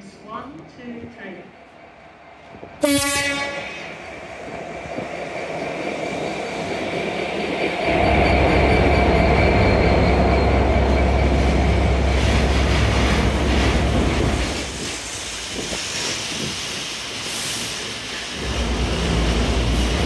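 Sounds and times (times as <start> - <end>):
diesel locomotive engine: 0.0 - 20.0
locomotive horn blast: 2.8 - 3.9.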